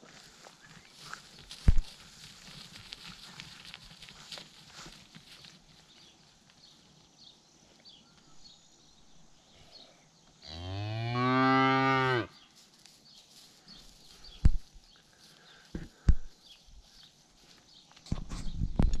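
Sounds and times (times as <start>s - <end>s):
rough crackling noise: 0.2s - 6.8s
cow mooing: 10.5s - 12.3s.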